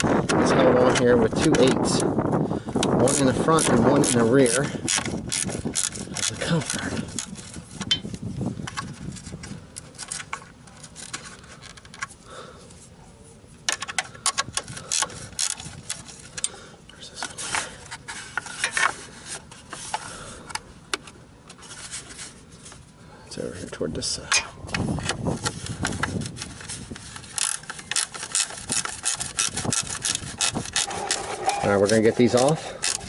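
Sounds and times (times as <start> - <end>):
wrench clicking on metal bolts: 2.8 - 7.3, 27.4 - 33.0
tool scraping bolt heads: 2.8 - 8.1, 24.3 - 33.0.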